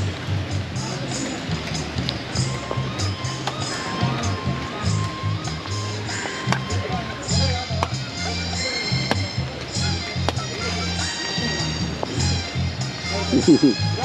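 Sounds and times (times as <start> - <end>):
music with rhythmic bass line: 0.0 - 14.0.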